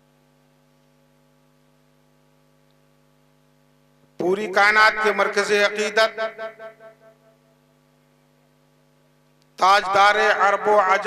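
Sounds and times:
electrical hum: 0.0 - 11.0
man chanting over loudspeaker: 4.2 - 7.2, 9.6 - 11.0.

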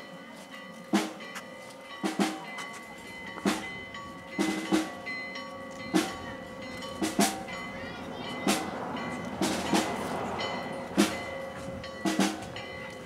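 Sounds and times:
marching band drums beating: 0.9 - 1.2, 2.0 - 2.4, 3.4 - 3.8, 4.4 - 5.0, 5.9 - 6.4, 7.0 - 7.5, 9.4 - 10.2, 10.8 - 12.6.

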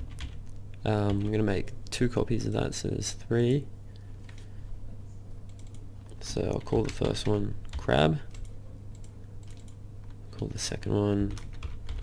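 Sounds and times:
computer keyboard typing: 0.0 - 0.4, 1.0 - 1.4, 5.5 - 5.8, 6.4 - 9.8, 11.2 - 12.0
low steady hum: 0.0 - 12.0.

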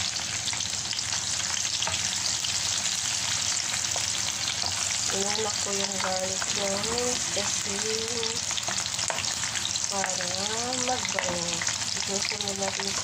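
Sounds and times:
garlic sizzling in hot oil: 0.0 - 13.0.

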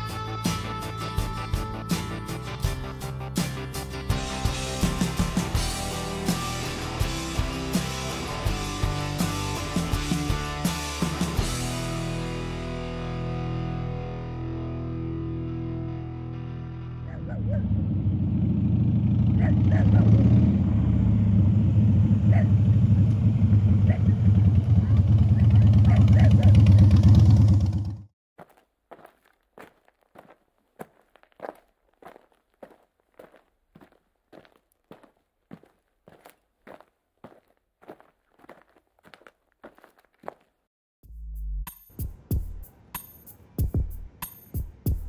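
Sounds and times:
motorcycle engine rumbling: 17.0 - 28.1
footsteps on dry ground: 28.4 - 40.7.

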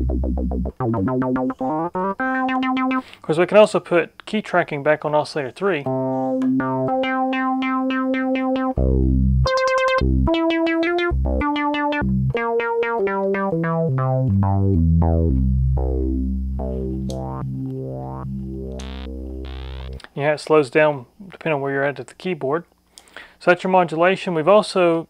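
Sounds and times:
pulsing synthesizer notes: 0.0 - 3.0, 5.9 - 20.0.

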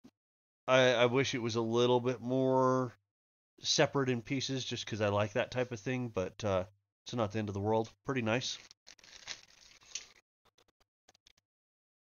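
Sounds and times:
plastic bag crinkling: 8.4 - 10.2.

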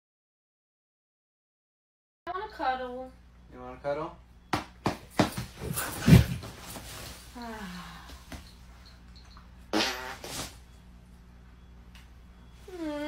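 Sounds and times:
bedding rustling: 5.2 - 7.4
loud fart: 9.7 - 10.6.

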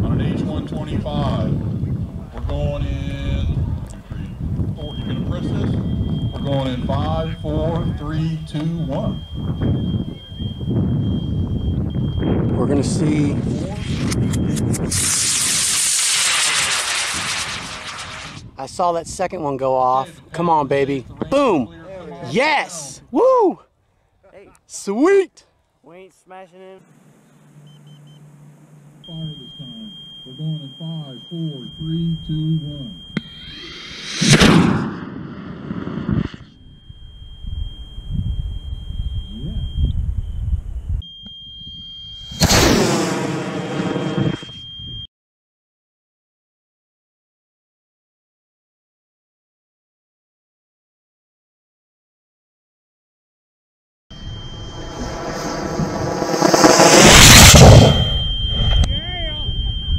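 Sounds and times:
steady high-pitched tone: 4.2 - 18.2, 26.6 - 35.2, 36.0 - 45.0, 54.1 - 59.9
rocket motor roaring: 13.6 - 18.4, 33.1 - 36.8, 42.3 - 44.5, 54.2 - 58.9
low rumble: 54.1 - 59.9.

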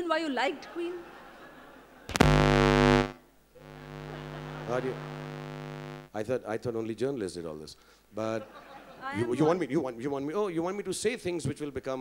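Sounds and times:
loud electrical buzz through speakers: 2.1 - 6.1
steady buzzing hum: 2.1 - 6.1.

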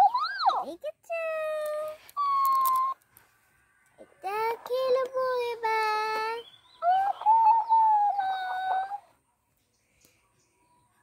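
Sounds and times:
lower-pitched voice: 0.0 - 3.0, 4.0 - 9.2
toy playing back high-pitched voice: 4.0 - 9.1.

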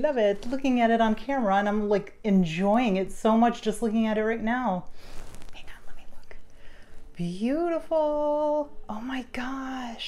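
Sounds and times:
person whispering: 5.5 - 6.5.

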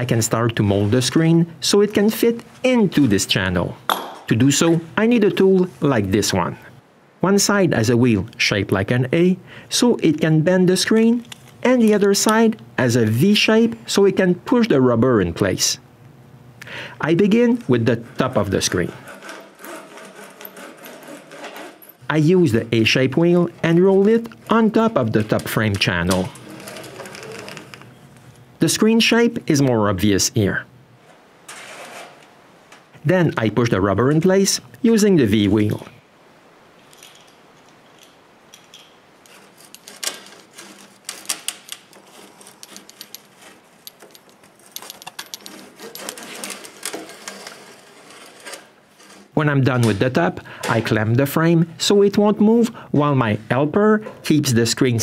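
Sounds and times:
spline roller ticking along frame: 18.2 - 21.9, 23.7 - 27.8, 44.8 - 49.3.

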